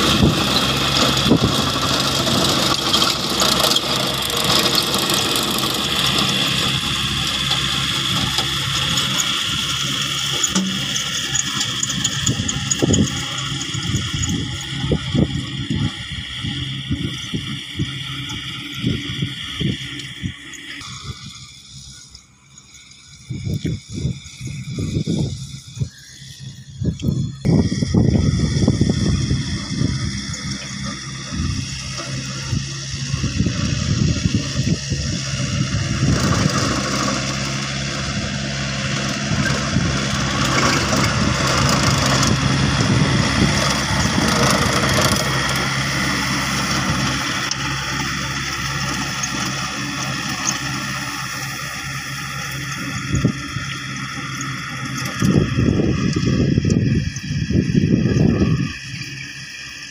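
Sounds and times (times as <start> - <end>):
tiller churning soil: 0.0 - 59.9
tractor engine running under load: 0.0 - 59.9.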